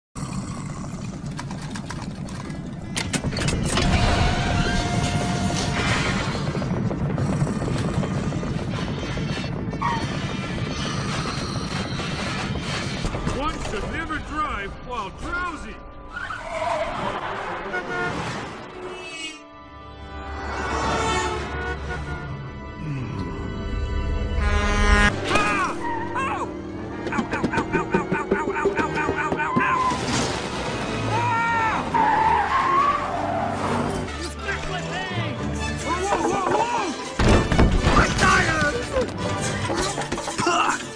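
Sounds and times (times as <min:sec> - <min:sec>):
tyres squealing in dirt: 0:31.1 - 0:34.1.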